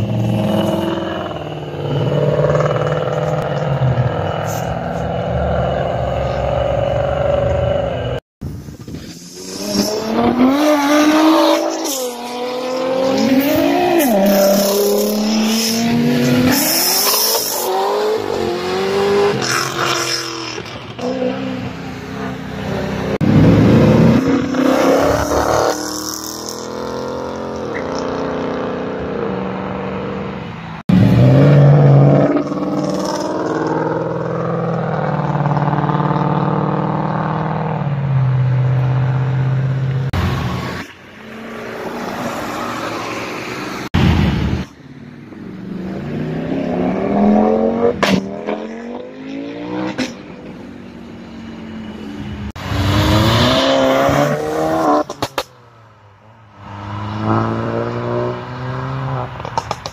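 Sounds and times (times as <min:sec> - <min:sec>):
sports cars accelerating hard: 0:09.2 - 0:44.0, 0:45.3 - 0:51.1, 0:51.9 - 0:55.4, 0:56.5 - 0:59.9.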